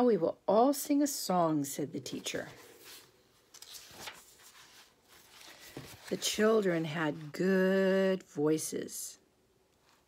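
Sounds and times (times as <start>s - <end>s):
paper rustling: 2.1s - 7.4s.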